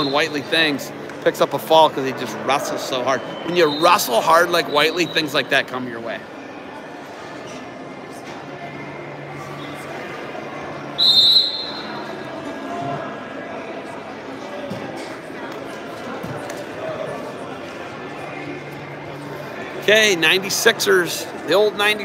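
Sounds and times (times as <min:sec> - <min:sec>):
murmur of crowd: 0:00.0 - 0:22.0
referee's whistle blast: 0:11.0 - 0:12.0.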